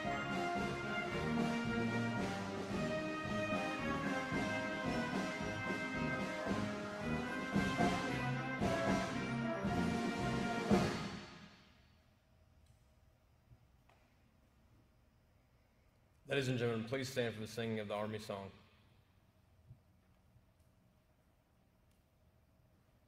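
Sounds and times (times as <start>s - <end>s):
band with brass and timpani: 0.0s - 11.6s.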